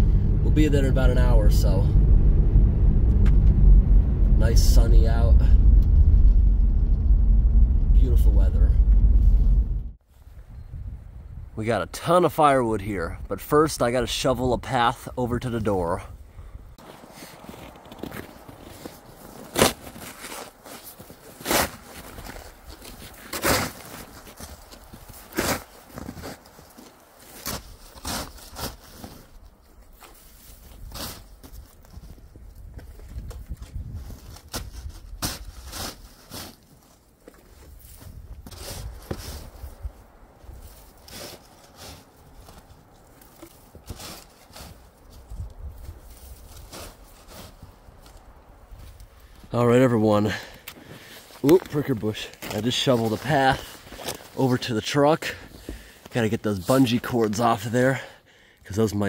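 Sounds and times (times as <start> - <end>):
snow shovel scraping snow: 16.8 - 29.3, 30.0 - 31.5, 34.2 - 36.9, 37.7 - 39.8, 40.5 - 45.0, 46.0 - 48.2
footsteps crunching in snow: 16.8 - 49.4.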